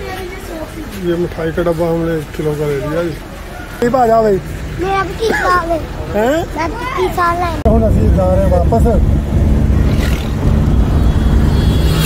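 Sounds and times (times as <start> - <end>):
road and wind hiss: 0.0 - 12.0
van engine and road rumble: 0.0 - 12.0.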